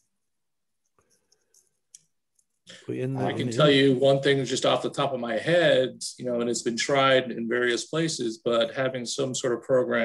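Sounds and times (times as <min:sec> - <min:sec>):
man speaking: 0:02.7 - 0:10.0.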